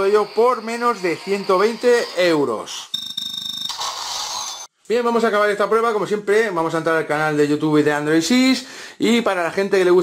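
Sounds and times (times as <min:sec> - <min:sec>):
steady high tone: 0:00.0 - 0:04.7.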